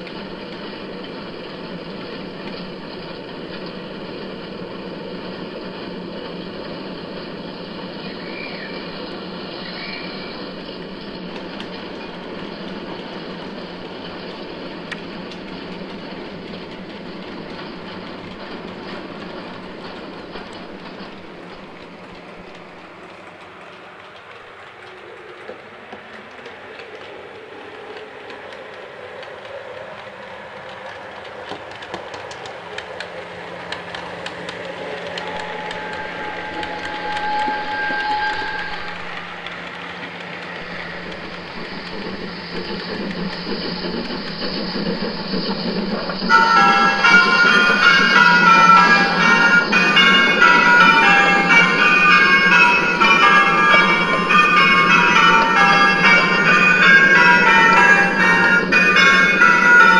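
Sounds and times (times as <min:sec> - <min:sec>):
train wheels clattering: 0:00.0 - 0:59.9
train whistle: 0:34.9 - 0:39.8, 0:46.3 - 0:56.6.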